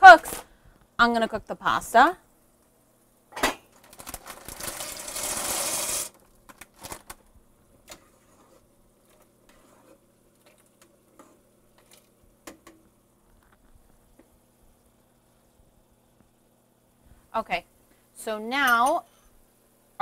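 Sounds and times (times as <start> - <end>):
dry pasta pouring into a pot: 3.8 - 6.2
utensil stirring a pot: 8.0 - 12.2.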